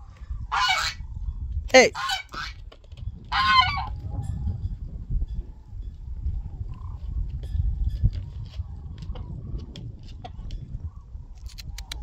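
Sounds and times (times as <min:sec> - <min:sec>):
geese honking: 0:00.5 - 0:01.0, 0:01.9 - 0:02.6, 0:03.3 - 0:04.0.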